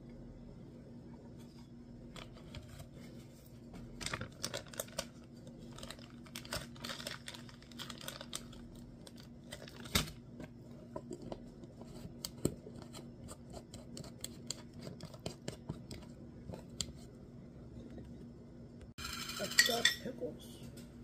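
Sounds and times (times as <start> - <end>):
foil chip bag crinkling: 3.9 - 10.2.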